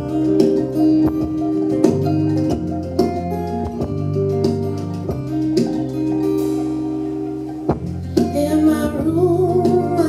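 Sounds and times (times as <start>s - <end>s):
guitar and bass: 0.0s - 10.0s.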